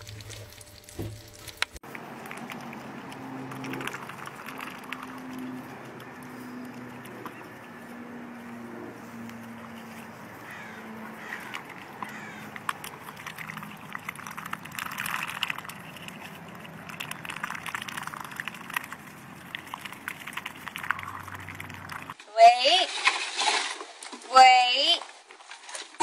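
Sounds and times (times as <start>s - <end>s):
ducks dabbling in watermelon: 0.0s - 22.2s
wet clicks and slurps: 0.0s - 22.2s.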